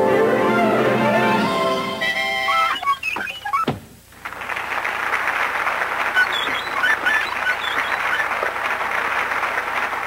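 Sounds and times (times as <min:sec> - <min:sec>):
group clapping: 0:04.2 - 0:10.0.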